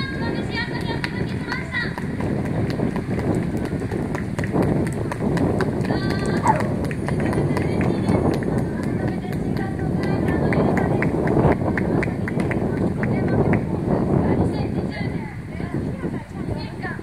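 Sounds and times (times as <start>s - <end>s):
wind buffeting microphone: 0.0s - 17.0s
faint voices: 5.8s - 17.0s.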